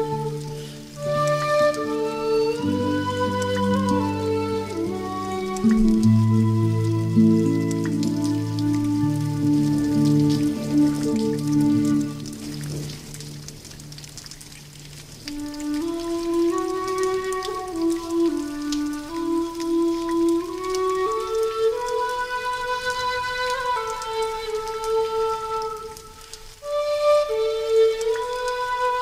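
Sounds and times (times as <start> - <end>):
slow gentle instrumental music: 0.0 - 29.0.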